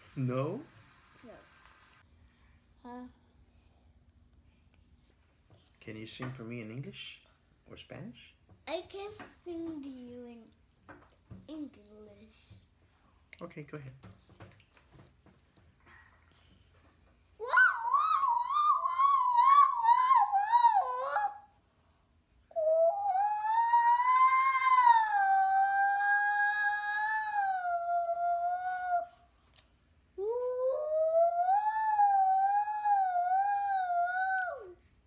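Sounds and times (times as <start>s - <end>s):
toddler singing siren-like wail: 17.4s - 21.4s, 22.5s - 29.1s, 30.2s - 34.8s.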